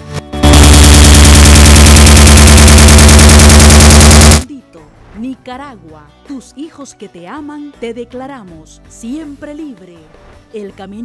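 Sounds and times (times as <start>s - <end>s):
harsh distorted buzzing rattle: 0.4s - 4.5s
woman speaking: 4.5s - 10.0s, 10.6s - 11.0s.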